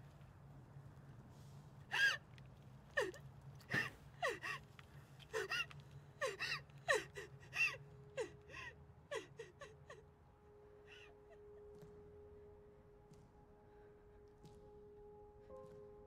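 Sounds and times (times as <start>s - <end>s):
woman gasping and sobbing: 1.9s - 2.2s, 3.0s - 4.6s, 5.3s - 10.0s.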